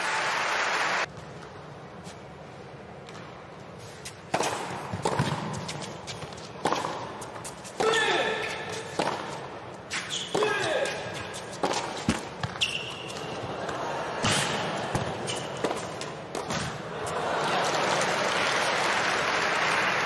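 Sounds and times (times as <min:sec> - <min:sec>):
racket striking tennis ball: 0:04.3 - 0:16.9.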